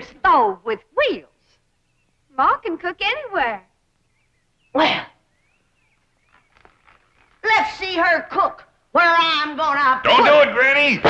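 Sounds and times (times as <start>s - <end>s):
faint bird chirps: 1.1s - 8.0s.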